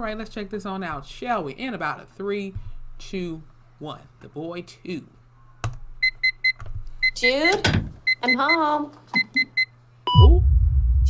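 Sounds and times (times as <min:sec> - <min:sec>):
alarm keypad beeps: 0:06.0 - 0:10.4.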